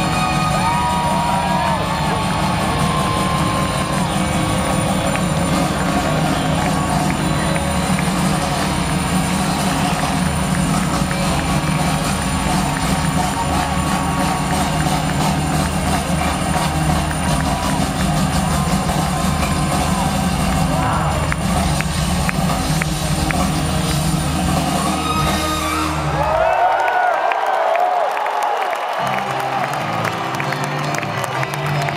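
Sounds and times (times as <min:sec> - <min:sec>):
crowd noise: 0:00.0 - 0:31.9.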